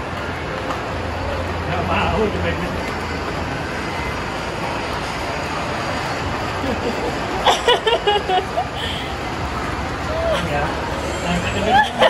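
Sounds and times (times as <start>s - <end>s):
shopping mall background roar: 0.0s - 12.0s.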